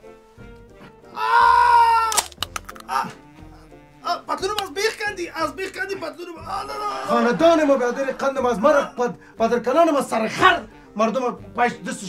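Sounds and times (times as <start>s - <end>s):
man crying out in pain: 1.1s - 2.3s
sharp bone clicks: 2.0s - 3.1s.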